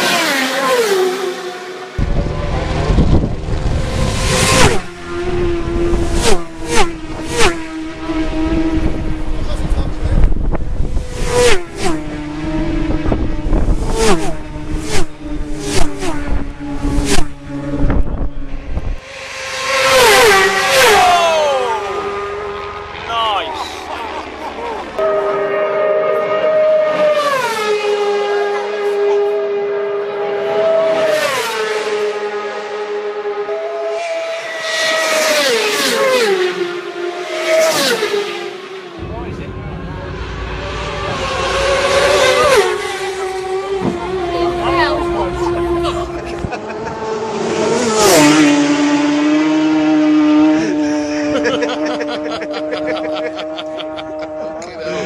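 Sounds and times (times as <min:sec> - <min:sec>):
race motorcycles passing: 0:00.0 - 0:55.0.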